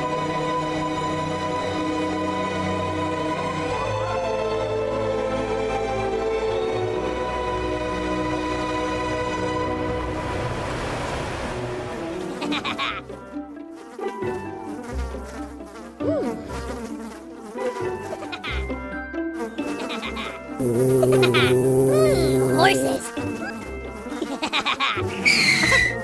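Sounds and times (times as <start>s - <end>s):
music: 0.0s - 26.0s
flies buzzing: 13.7s - 18.6s, 19.4s - 23.3s.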